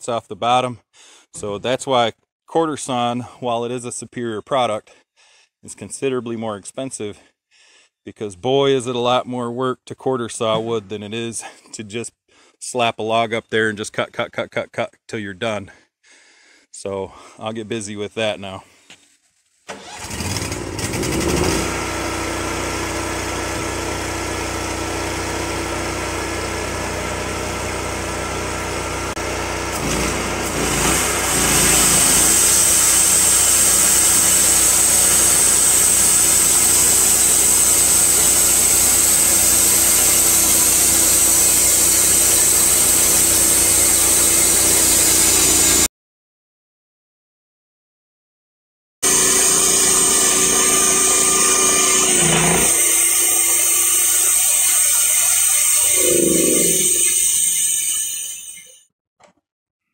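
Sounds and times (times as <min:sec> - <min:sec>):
sawmill engine running: 0:19.7 - 0:45.9, 0:49.0 - 0:58.6
high whine: 0:55.9 - 0:57.5.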